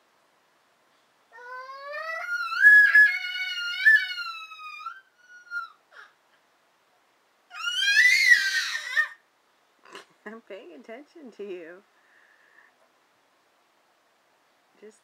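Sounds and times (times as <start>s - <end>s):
baby squealing: 1.4s - 6.2s, 7.5s - 9.2s.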